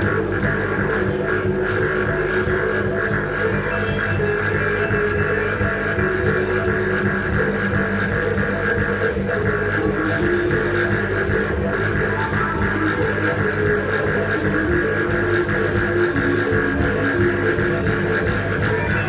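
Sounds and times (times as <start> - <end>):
droning experimental music: 0.0 - 19.0.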